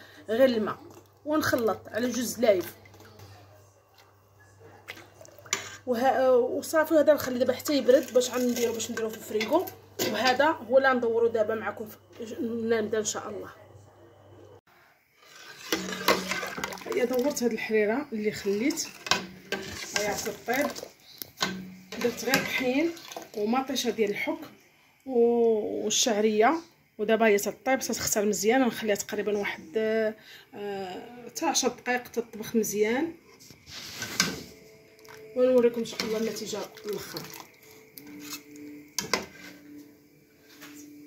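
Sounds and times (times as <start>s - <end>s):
ladle stirring in steel pot: 7.2s - 10.5s, 15.2s - 17.5s, 18.2s - 23.9s, 35.8s - 39.7s.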